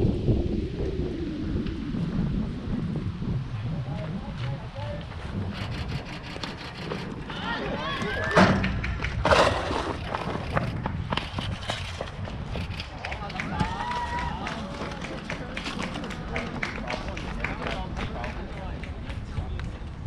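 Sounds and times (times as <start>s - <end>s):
wind rumble on microphone: 0.0s - 20.0s
players and onlookers calling out: 7.2s - 8.8s.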